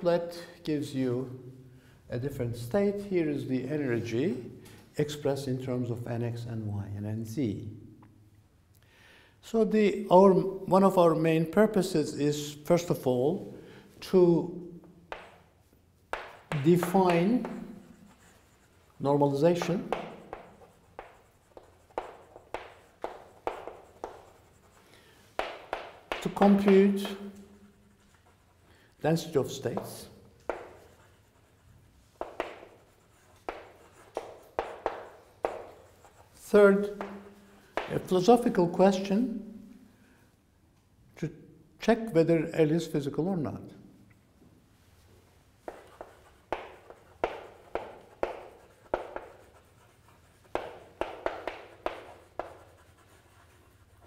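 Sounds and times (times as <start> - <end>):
chalk tapping and scratching: 14.8 - 38.7, 45.0 - 54.0.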